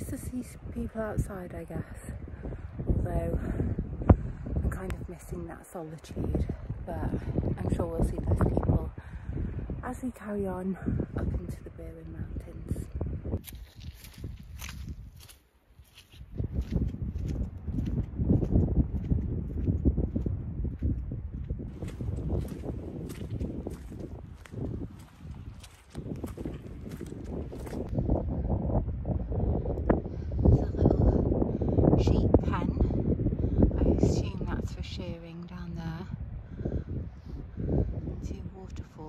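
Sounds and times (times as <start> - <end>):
wind buffeting microphone: 0.0 - 39.0
footsteps on stony path: 13.4 - 28.0.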